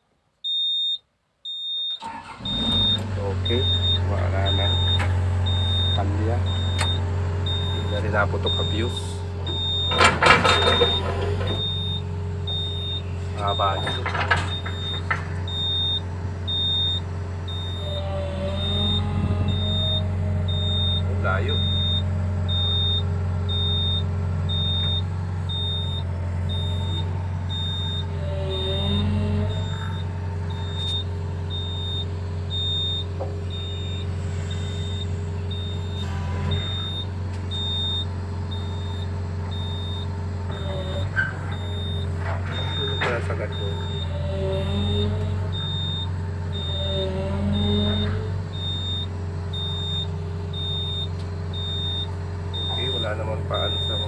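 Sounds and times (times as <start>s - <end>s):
high-pitched warning beeps: 0.5s - 54.0s
excavator diesel engine running: 2.0s - 54.0s.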